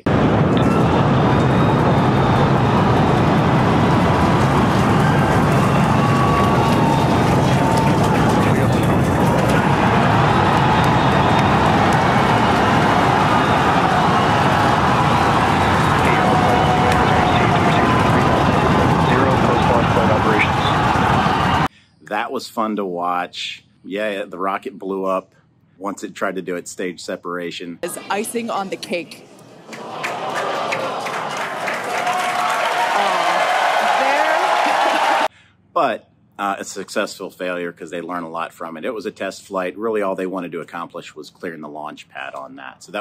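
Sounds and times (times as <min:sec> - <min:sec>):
rocket engines roaring: 0:00.0 - 0:22.8.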